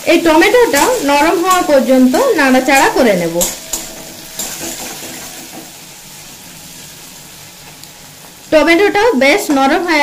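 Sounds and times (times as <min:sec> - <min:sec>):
onions sizzling in hot oil: 0:00.0 - 0:10.0
spatula turning food: 0:00.3 - 0:08.4.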